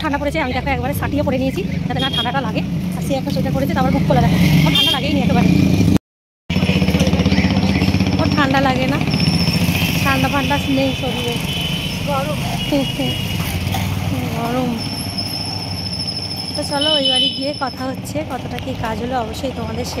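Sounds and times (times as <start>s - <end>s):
women chatting: 0.0s - 5.6s, 8.2s - 9.2s, 9.9s - 13.3s, 14.0s - 14.9s, 16.6s - 20.0s
vehicle engine running: 0.0s - 14.8s.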